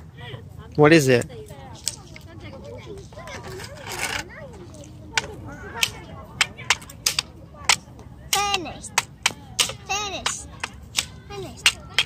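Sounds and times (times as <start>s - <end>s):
soft indistinct voices: 0.0s - 12.0s.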